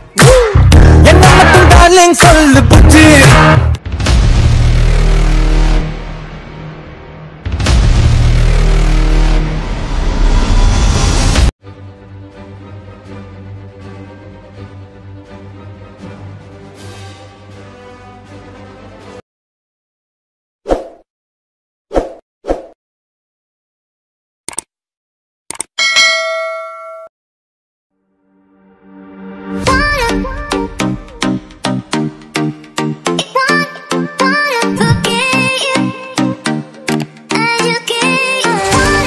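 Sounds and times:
notification bell ding: 25.8s - 27.1s.

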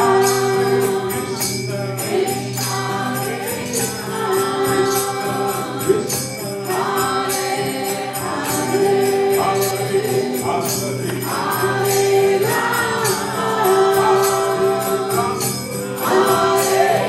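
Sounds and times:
hand cymbals ringing: 0.0s - 17.0s
group chanting in unison: 6.8s - 17.0s.

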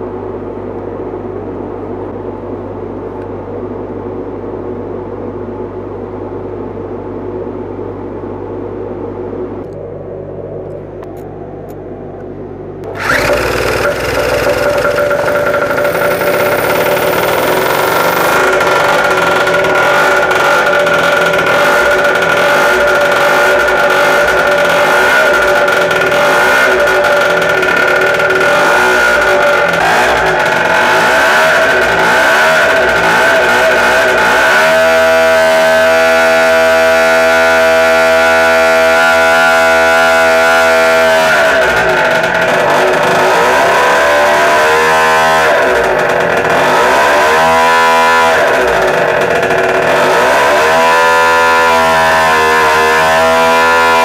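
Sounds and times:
small two-stroke engine running: 12.8s - 54.0s.

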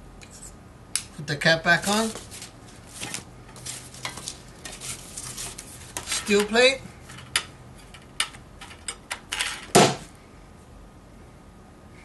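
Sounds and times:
cardboard sheets sliding: 1.8s - 6.4s.

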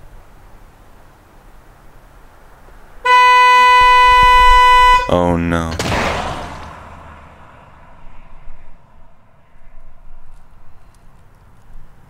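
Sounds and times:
car horn blast: 3.0s - 5.4s.

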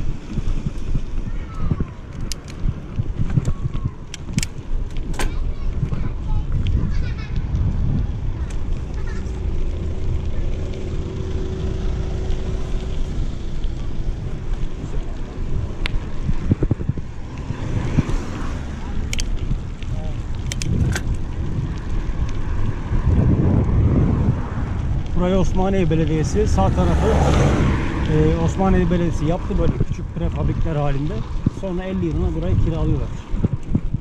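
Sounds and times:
bike tyres rolling on gravel: 0.0s - 34.0s
wind buffeting microphone: 0.0s - 34.0s
sharp clicks: 19.0s - 21.2s.

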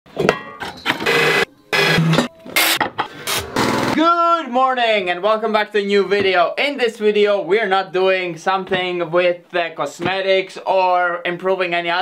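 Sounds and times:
power tools cutting metal: 0.9s - 4.0s.

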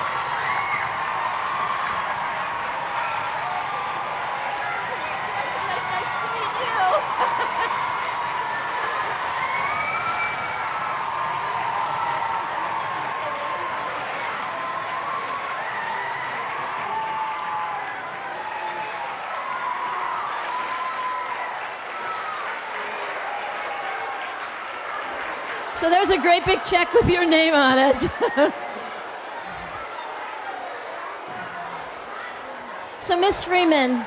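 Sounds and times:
crowd cheering: 0.0s - 34.0s
crowd clapping: 0.0s - 34.0s.

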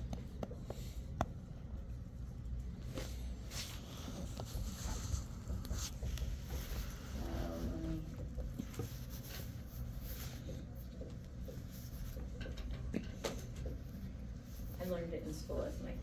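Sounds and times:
low room rumble: 0.0s - 16.0s.

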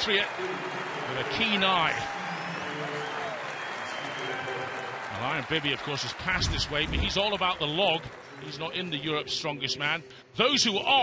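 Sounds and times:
crowd applauding and cheering: 0.0s - 9.9s.

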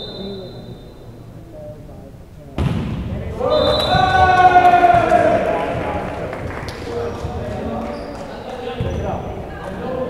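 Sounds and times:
indistinct voices in gymnasium: 0.0s - 10.0s.

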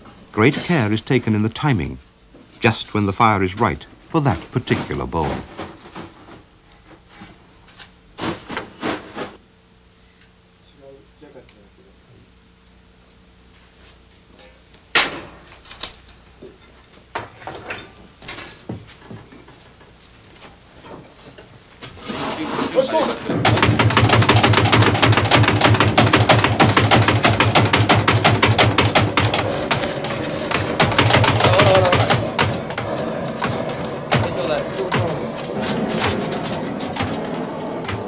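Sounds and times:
fire crackling and rushing: 22.4s - 38.0s
fire knocks: 23.2s - 38.0s.

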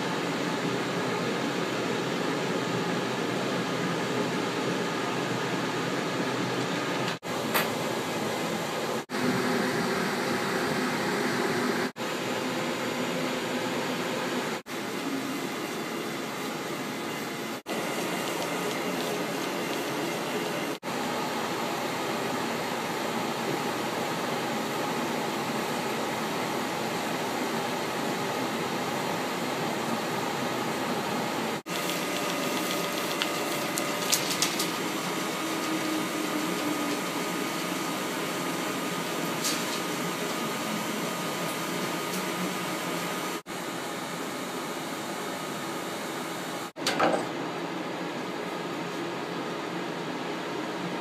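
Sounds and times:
film projector machinery whirring: 7.0s - 46.7s.

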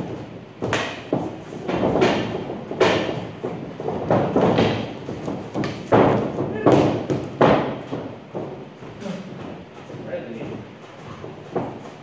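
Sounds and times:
heavy thuds on padded floor: 0.0s - 12.0s.

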